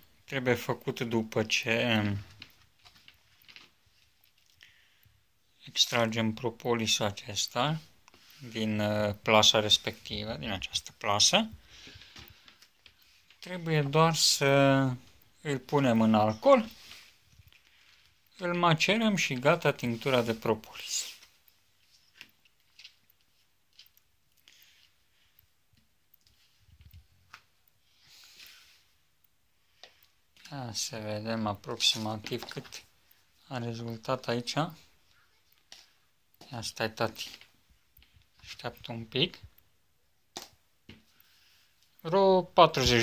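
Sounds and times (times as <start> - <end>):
faint rustles and ticks: 0.0 - 43.0.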